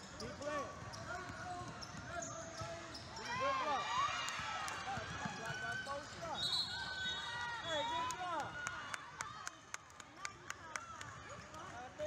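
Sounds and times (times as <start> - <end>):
sneakers squeaking on hardwood: 0.2 - 3.2.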